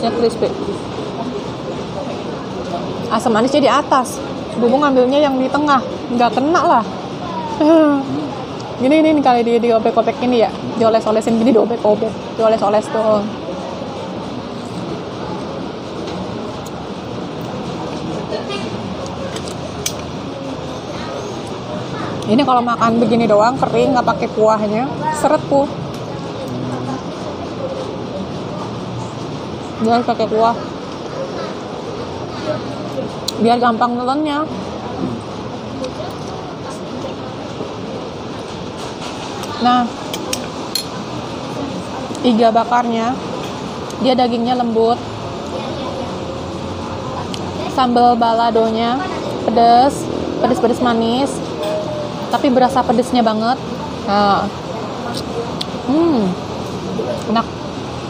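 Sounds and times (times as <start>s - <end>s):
faint distant voices: 0.0s - 58.0s
hum of background noise: 0.0s - 58.0s
steady background noise: 0.0s - 58.0s.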